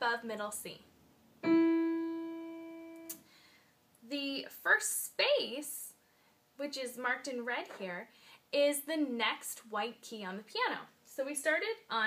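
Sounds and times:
piano note ringing: 1.4 - 3.1.

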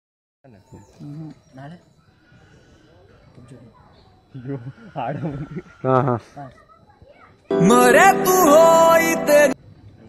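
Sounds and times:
faint outdoor background: 0.4 - 10.0
young man's vocal sounds: 7.5 - 9.6.

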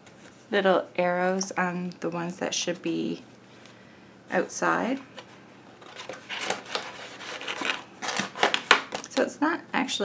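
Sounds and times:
paper rustling and rubbing: 5.2 - 8.9.

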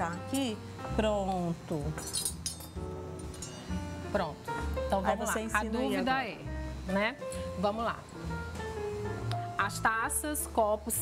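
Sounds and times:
background music with held tones: 0.0 - 11.0
tableware clinking: 1.9 - 3.9.

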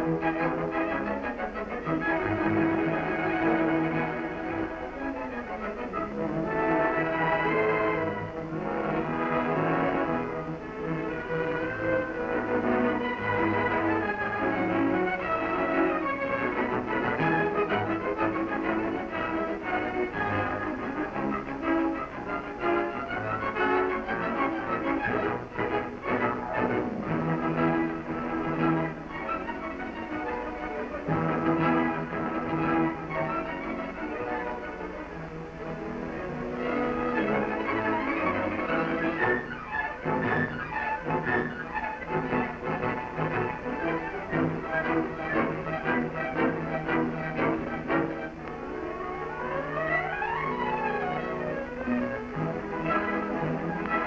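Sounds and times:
orchestral bowed strings: 0.0 - 54.0.

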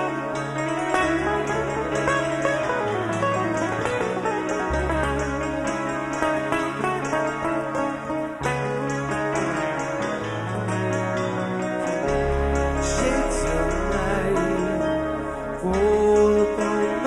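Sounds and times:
clean plucked guitar: 0.0 - 17.0
held bass notes: 0.0 - 17.0.

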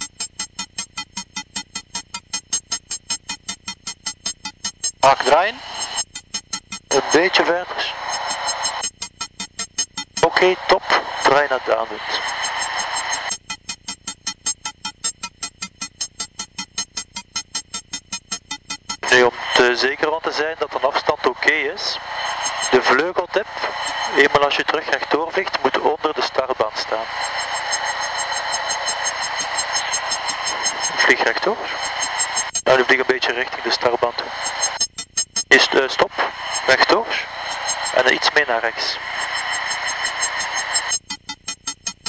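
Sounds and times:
radio voice transmissions: 5.0 - 5.8, 6.9 - 8.7, 10.2 - 13.0, 19.0 - 34.5, 35.5 - 40.6
fast even pulsing: 22.1 - 23.0, 23.7 - 25.0, 27.1 - 32.7, 36.4 - 41.1.

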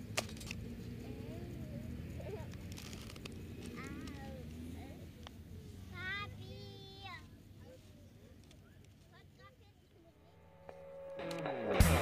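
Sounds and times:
faint indistinct voices: 0.5 - 12.0.

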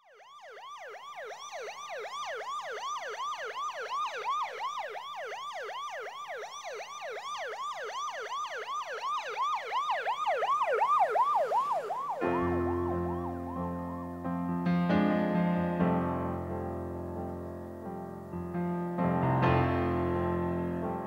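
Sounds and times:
emergency siren yelping: 0.0 - 21.0.

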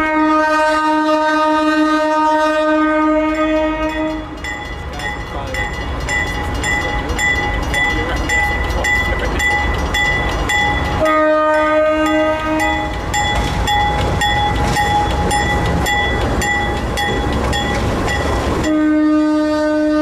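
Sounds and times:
locomotive horn blasts: 0.0 - 4.4, 11.0 - 12.9, 18.6 - 20.0
crossing bell ringing: 2.7 - 19.7
locomotives rumbling past: 2.7 - 20.0
train wheel clatter: 3.1 - 18.8.

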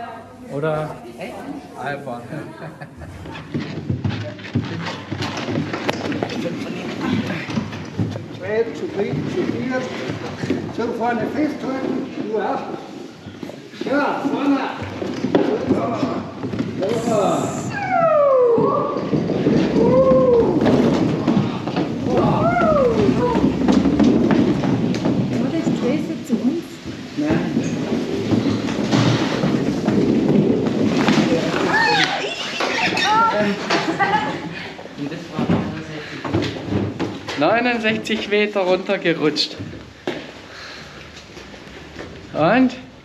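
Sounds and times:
rubbing rumble of sliding: 15.0 - 34.5
people talking: 16.8 - 17.8.

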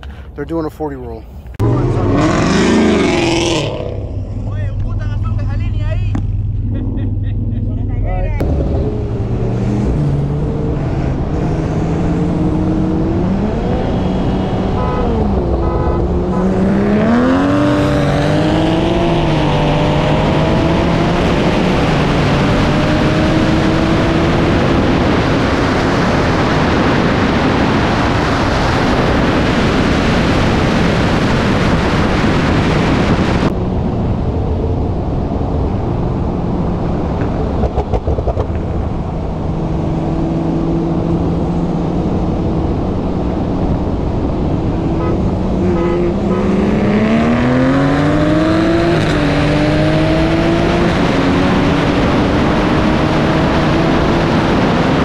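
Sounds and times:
car engine droning and revving: 0.0 - 55.0
wind and road noise: 0.0 - 55.0.

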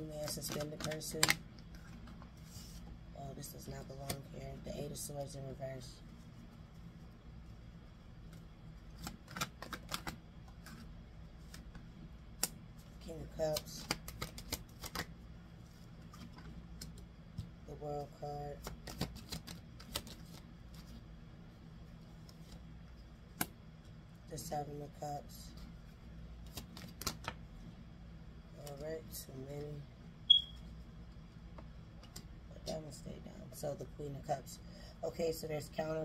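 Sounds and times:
tarot cards clicking and slapping: 0.2 - 2.4, 8.2 - 12.7, 13.3 - 15.2, 16.0 - 17.6, 18.6 - 21.0, 22.2 - 23.6, 26.4 - 27.4.

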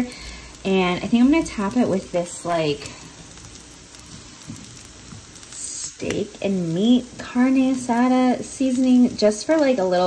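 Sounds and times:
patties sizzling in oil: 0.0 - 10.0.

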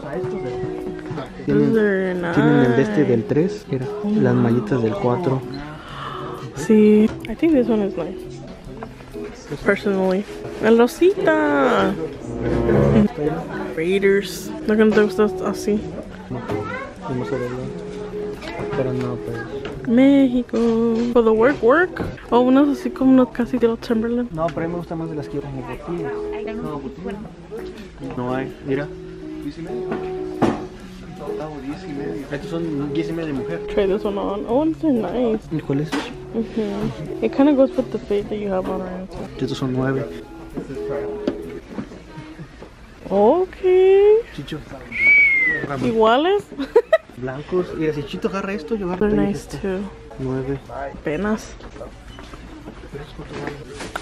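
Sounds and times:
held musical tones: 0.0 - 42.5
low murmur: 12.0 - 13.7
voices talking or singing: 40.1 - 46.1.

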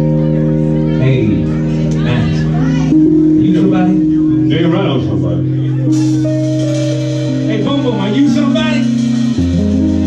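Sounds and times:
bass and guitar: 0.0 - 10.0
held organ chord: 0.0 - 10.0.

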